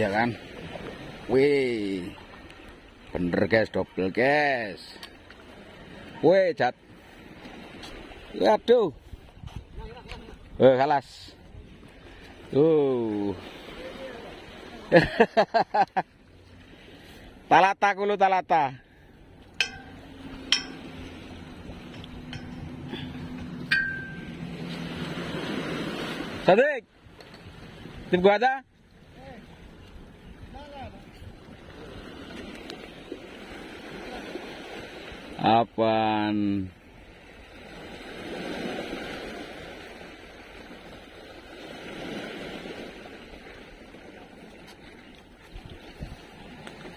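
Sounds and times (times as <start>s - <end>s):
sharp metallic clink: 19.6s - 21.0s, 23.7s - 24.4s
waves washing against rocks: 19.6s - 26.7s, 37.2s - 46.9s.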